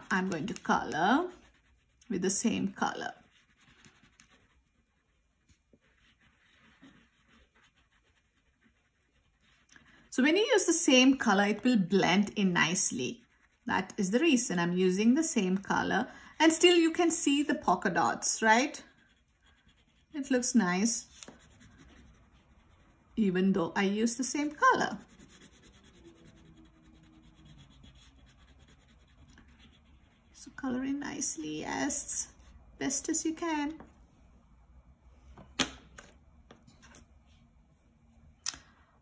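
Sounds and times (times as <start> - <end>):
crayon scratching on paper: 0.0 - 11.6, 12.2 - 14.8, 15.4 - 30.5.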